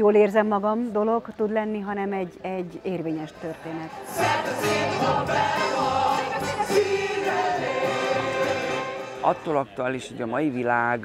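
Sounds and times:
ensemble singing with accompaniment: 0:03.9 - 0:09.4.

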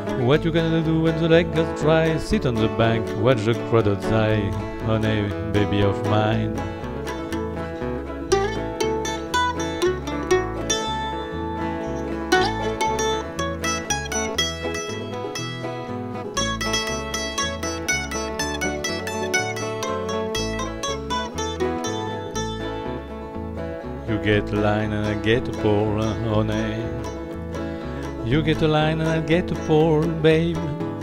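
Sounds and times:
banjo: 0:00.0 - 0:31.0
bass line: 0:00.0 - 0:31.0
bluegrass instrumental: 0:00.0 - 0:31.0
plucked mandolin: 0:00.0 - 0:31.0.

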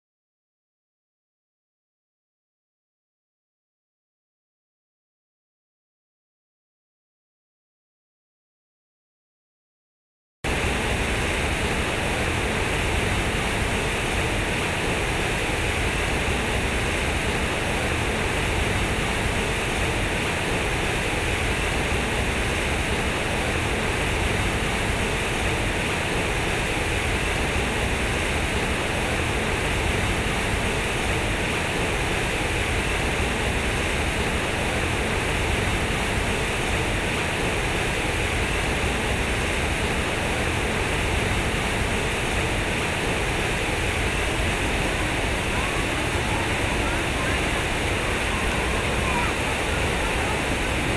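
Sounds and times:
fountain water splashing into pool: 0:10.6 - 0:50.9.

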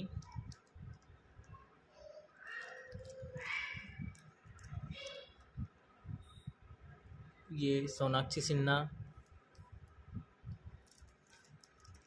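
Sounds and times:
plastic sleeves rustling and clicking: 0:00.1 - 0:01.5, 0:02.5 - 0:05.6, 0:10.5 - 0:12.0.

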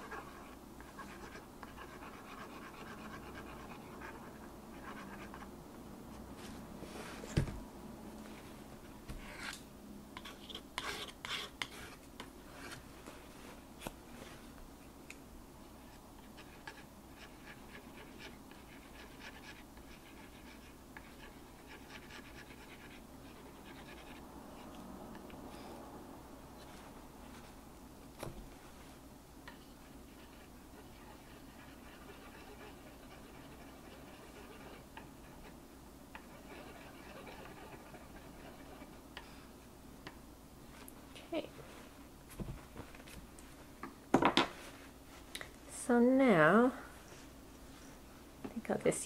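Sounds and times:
palette knife scraping paint: 0:10.2 - 0:12.8, 0:30.1 - 0:35.6, 0:36.2 - 0:39.0
palette knife scraping wet paint: 0:36.2 - 0:39.0.

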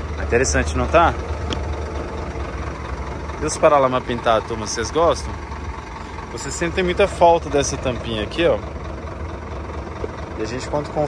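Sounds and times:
engine idling hum: 0:00.0 - 0:11.0.

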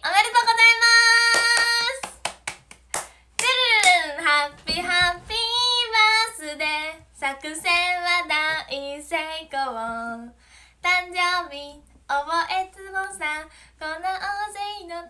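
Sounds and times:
young woman singing: 0:00.0 - 0:02.2, 0:03.4 - 0:15.0.

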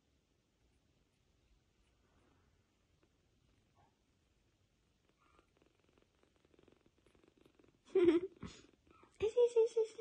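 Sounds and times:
kitten purring: 0:01.0 - 0:10.0.

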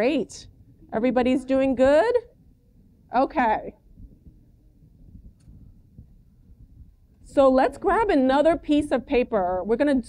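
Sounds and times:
faint low rumble: 0:00.0 - 0:09.7.

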